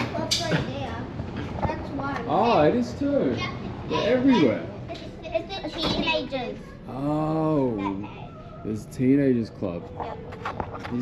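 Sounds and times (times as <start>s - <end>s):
young children chattering: 0.0s - 9.2s.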